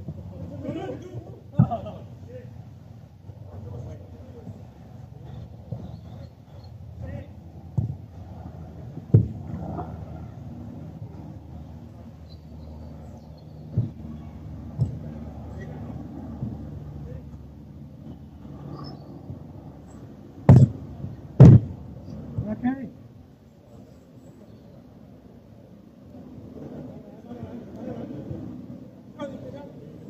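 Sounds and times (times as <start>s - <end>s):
football being kicked: 7.7s - 8.0s, 9.1s - 9.5s, 13.7s - 14.1s, 20.5s - 20.8s, 21.4s - 21.8s.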